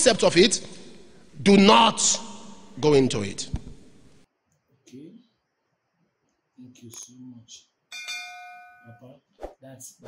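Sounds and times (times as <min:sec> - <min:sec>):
bell-like notification chime: 0:07.9 - 0:09.0
man's voice murmuring: 0:09.6 - 0:10.0.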